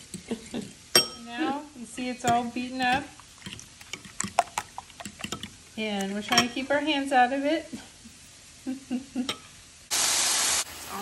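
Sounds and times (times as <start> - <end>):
utensils tapping cookware: 0.0 - 1.6, 2.2 - 6.7.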